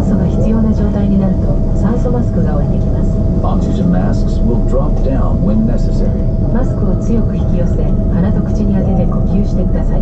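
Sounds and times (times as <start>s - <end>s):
aircraft cabin rumble and hum: 0.0s - 10.0s
passengers talking: 0.0s - 10.0s.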